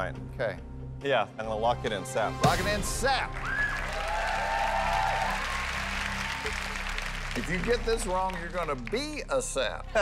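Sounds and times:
game show music with low notes: 0.0 - 10.0
audience applauding: 3.3 - 9.4.

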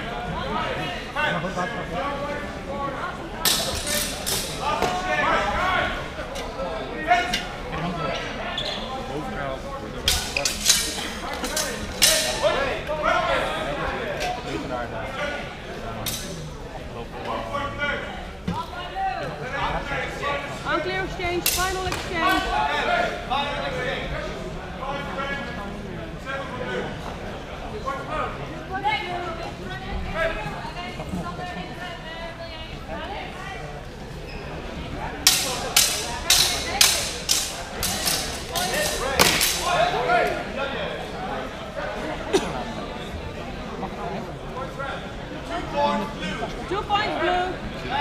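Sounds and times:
people talking in echoing hall: 0.0 - 48.0
swords clashing: 3.5 - 4.6, 10.0 - 12.5, 35.2 - 39.7.

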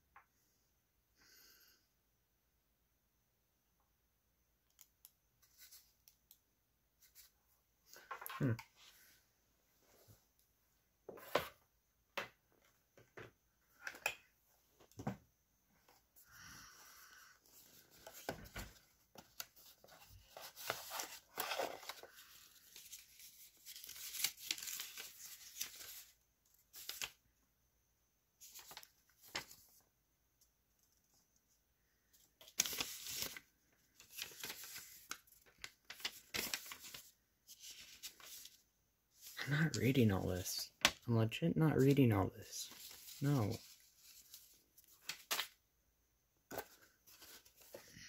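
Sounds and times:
packaging rustling: 17.5 - 26.1.

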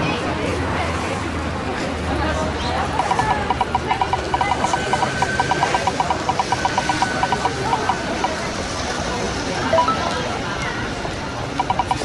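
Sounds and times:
spinning wheel rapid ticking: 3.0 - 8.4, 11.6 - 12.0.

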